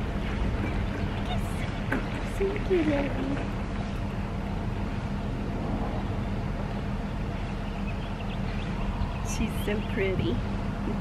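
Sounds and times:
low engine-like hum: 0.0 - 11.0.

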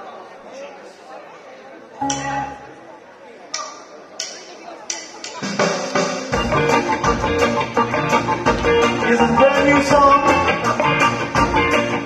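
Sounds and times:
bass guitar: 2.0 - 2.7, 6.3 - 12.0
ska band playing: 2.0 - 2.9, 5.4 - 12.0.

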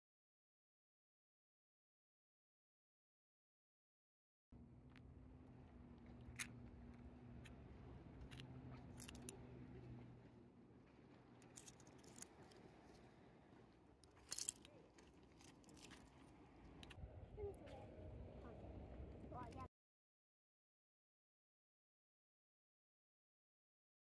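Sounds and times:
seashells clicking together: 14.0 - 16.2.

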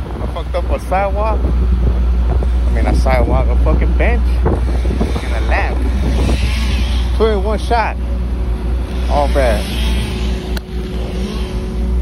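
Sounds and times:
engine rumbling: 0.0 - 12.0.

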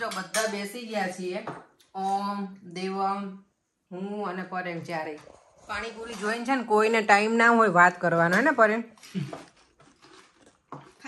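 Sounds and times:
woman talking: 0.0 - 8.9.

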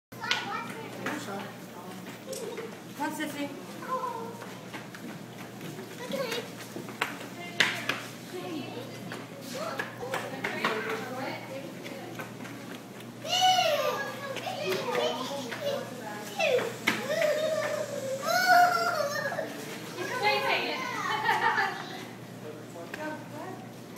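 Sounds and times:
children chattering and calling out: 0.2 - 22.4
child calling out: 13.2 - 14.3, 16.4 - 19.5.

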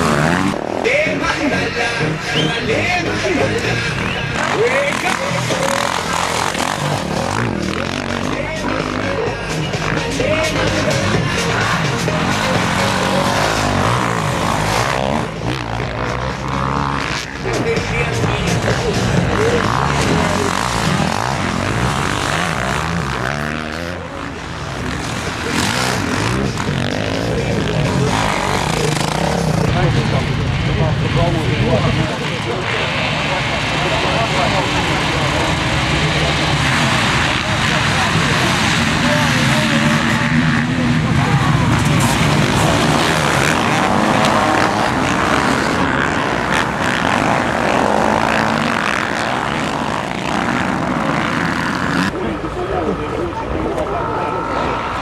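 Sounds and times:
motorcycle engines revving: 0.0 - 55.0
motorcycles riding past: 0.0 - 55.0.

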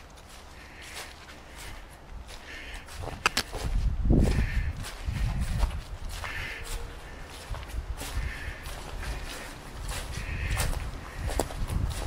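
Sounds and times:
footsteps crunching on dry leaves: 0.0 - 12.0.

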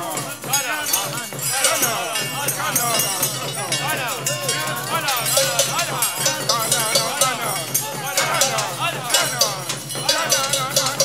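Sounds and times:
repeated percussion strikes: 0.0 - 11.0.

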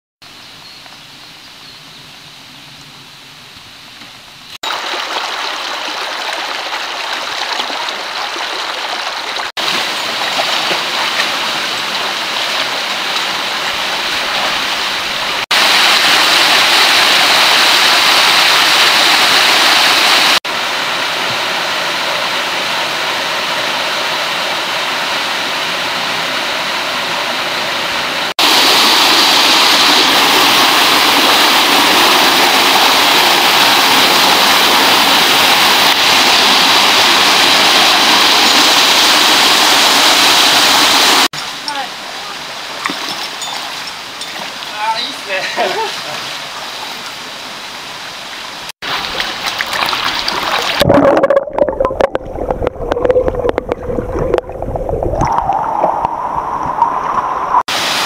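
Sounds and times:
stream and waterfall roaring: 2.2 - 50.8, 55.8 - 58.0.

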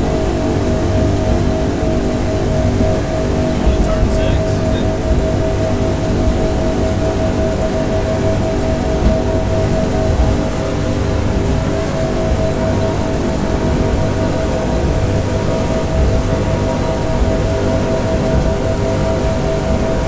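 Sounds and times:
outboard engines droning: 0.0 - 20.0.

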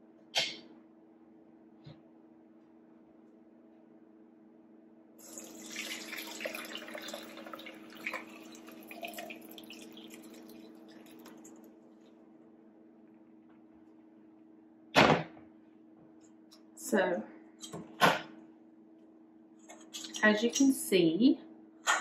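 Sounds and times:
liquid pouring into strainer: 5.2 - 11.7.

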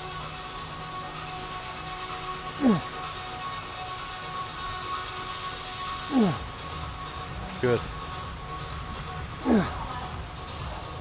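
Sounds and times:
background music with held notes: 0.0 - 11.0
man groaning with effort: 2.6 - 2.9, 6.0 - 6.6, 9.4 - 9.8.

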